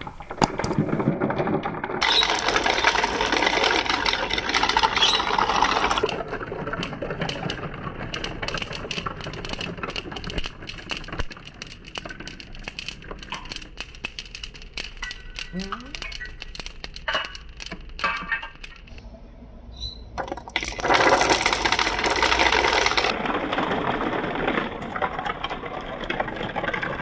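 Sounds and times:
marbles clattering down marble run: 0.0 - 18.9, 20.2 - 27.0
marbles dropping onto tile floor: 0.0 - 18.9, 20.2 - 27.0
marbles clicking: 0.0 - 19.0, 20.2 - 27.0.

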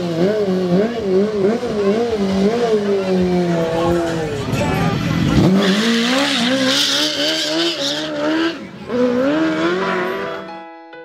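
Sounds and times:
car engine at high revs: 0.0 - 10.4.

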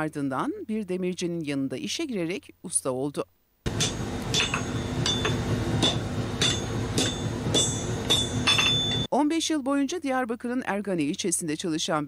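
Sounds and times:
hammer striking iron on anvil: 3.7 - 9.1.

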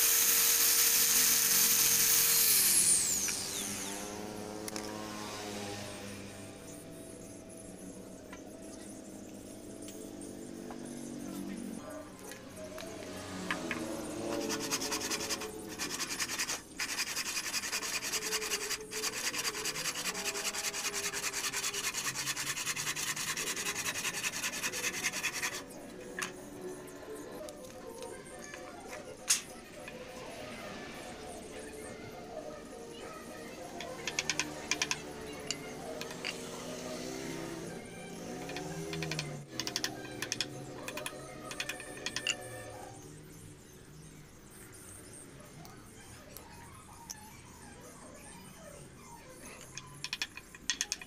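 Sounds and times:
hand saw cutting wood: 14.2 - 25.6.

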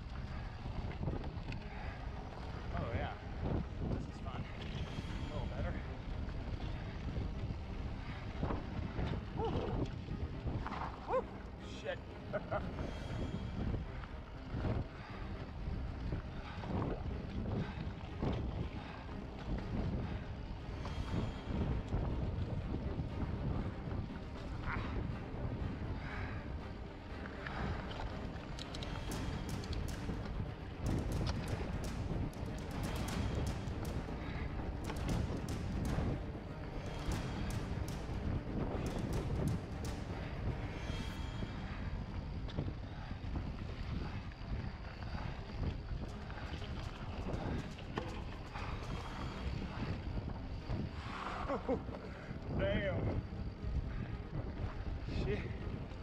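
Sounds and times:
wind buffeting microphone: 0.0 - 56.0
bike rattling and clicking: 28.2 - 41.2.

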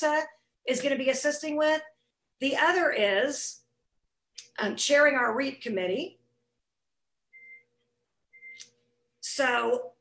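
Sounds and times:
short electronic beeps: 8.3 - 8.7.

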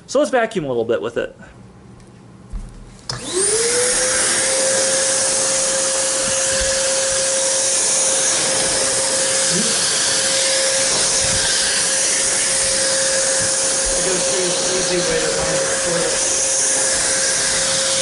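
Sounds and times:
vacuum cleaner motor whine: 3.0 - 18.0
vacuum cleaner switch click: 3.1 - 3.3.

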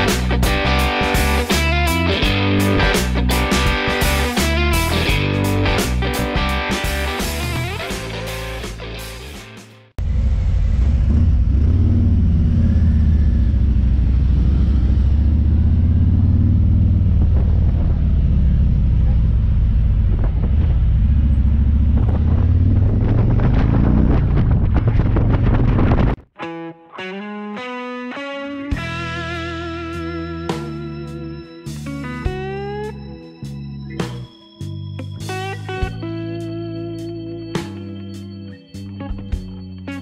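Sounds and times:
guitar music: 0.0 - 9.9, 25.8 - 40.0
motorcycle engine rumble: 10.0 - 26.2.

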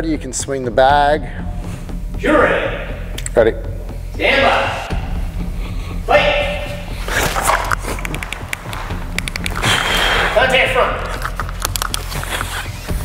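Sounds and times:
person calling commands: 4.2 - 5.0, 6.1 - 6.8
training pistol clicks: 7.6 - 9.7, 11.1 - 12.5.

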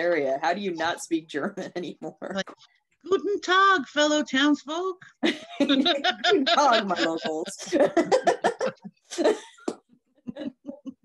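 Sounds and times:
woman laughing: 5.2 - 11.0.

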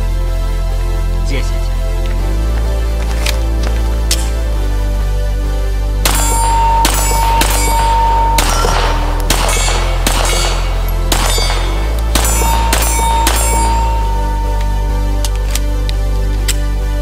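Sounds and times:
background music: 0.0 - 17.0
pistol shots: 6.0 - 15.7.

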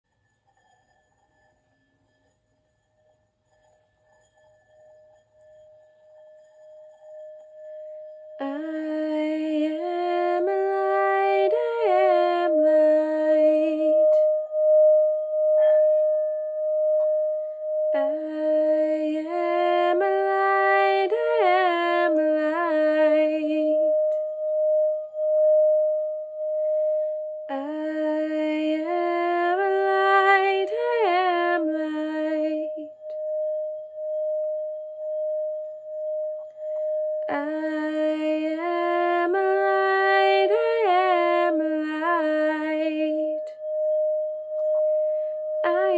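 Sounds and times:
singing bowl ringing: 0.4 - 45.9.

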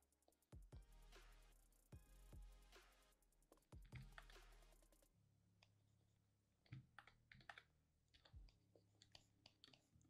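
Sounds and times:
keyboard and mouse clicks: 3.8 - 4.5, 6.6 - 10.0.

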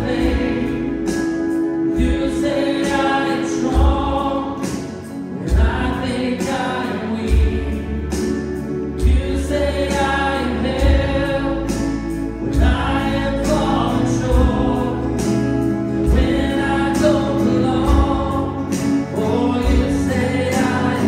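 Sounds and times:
congregation singing: 0.0 - 21.0
guitar: 0.0 - 21.0
low drum beat: 3.6 - 4.4, 5.5 - 6.1, 9.0 - 18.8, 19.6 - 21.0.

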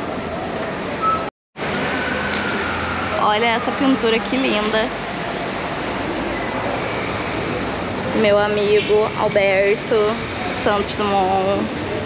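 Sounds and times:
busy airport ambient roar: 0.0 - 12.0.

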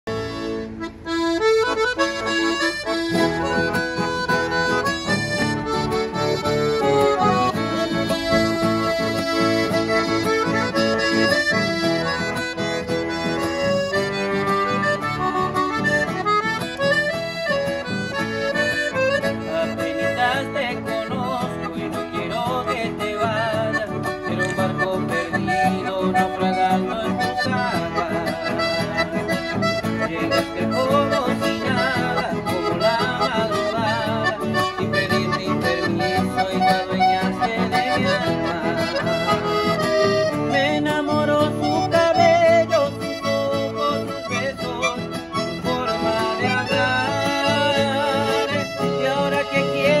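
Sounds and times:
acoustic guitar accompaniment: 0.1 - 50.0
piano accordion melody: 0.1 - 50.0.

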